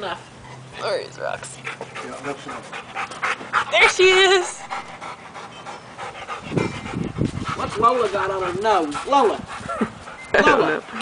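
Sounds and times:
dog panting: 0.4s - 11.0s.

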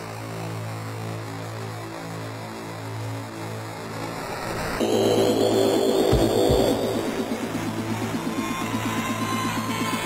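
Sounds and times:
minimal techno: 4.8s - 8.4s
deep kick drum thumps: 6.0s - 7.4s.

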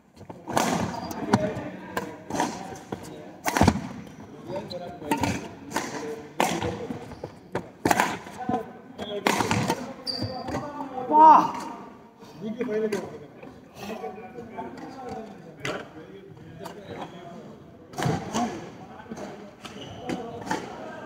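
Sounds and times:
racket striking shuttlecock: 3.4s - 4.0s, 5.1s - 6.8s, 7.8s - 8.3s.

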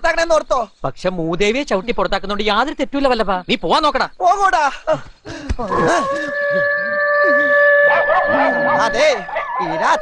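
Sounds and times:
long held synth note: 5.7s - 10.0s
low wavering tones: 5.7s - 10.0s.

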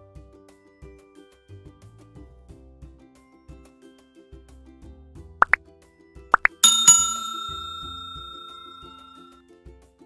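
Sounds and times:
bright bell chime: 6.4s - 9.3s.

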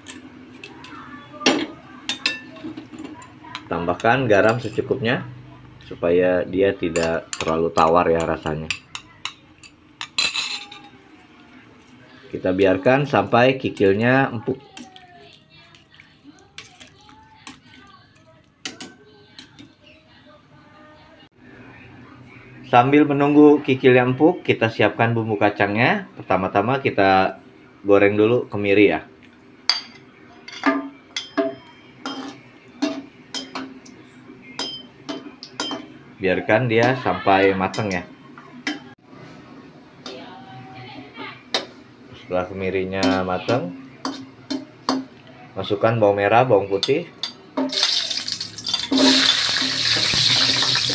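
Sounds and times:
metal spoon clinking on glass bowl: 47.2s - 49.6s.

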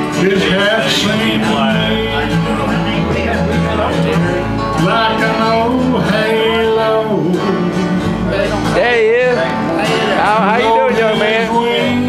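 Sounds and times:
country band playing: 0.0s - 12.0s.

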